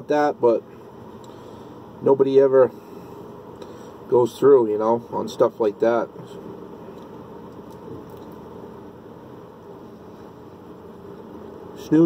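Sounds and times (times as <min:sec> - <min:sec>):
truck cab rumble and hiss: 0:00.0 - 0:12.0.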